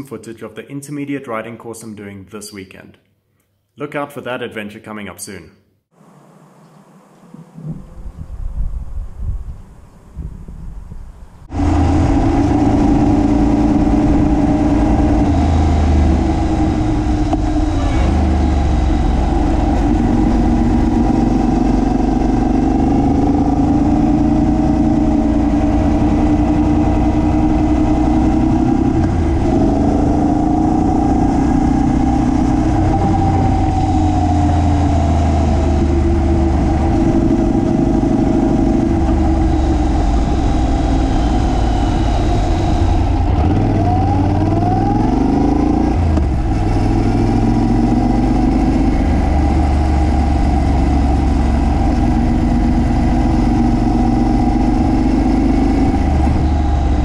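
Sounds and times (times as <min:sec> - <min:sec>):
wind and road noise: 0:06.0 - 0:57.0
motorcycle engine running: 0:11.5 - 0:57.0.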